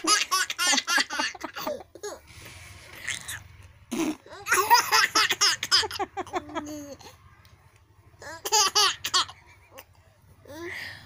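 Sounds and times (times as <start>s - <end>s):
baby laughing: 8.2s - 9.9s.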